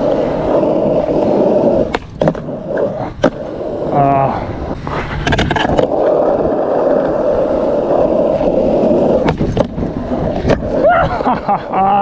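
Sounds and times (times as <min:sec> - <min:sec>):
skateboard wheels rolling on asphalt: 0:00.0 - 0:12.0
skateboard pop and clack: 0:01.6 - 0:03.5, 0:04.9 - 0:06.3, 0:08.3 - 0:10.8.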